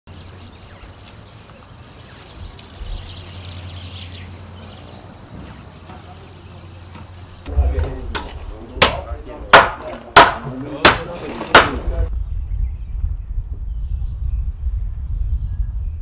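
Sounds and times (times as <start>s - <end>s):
insects trilling in grass: 0.1s - 7.5s
low rumble: 7.4s - 8.8s, 12.1s - 16.0s
loud low thump: 7.4s - 10.4s.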